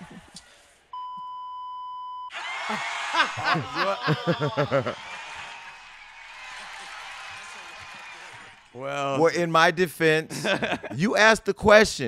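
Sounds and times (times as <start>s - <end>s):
high-pitched censor bleep: 1.0s - 2.3s
person laughing: 3.1s - 5.0s.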